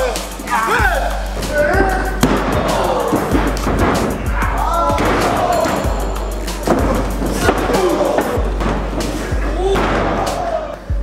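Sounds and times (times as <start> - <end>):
background music: 0.0 - 11.0
bodies thudding on ring boards: 1.4 - 10.4.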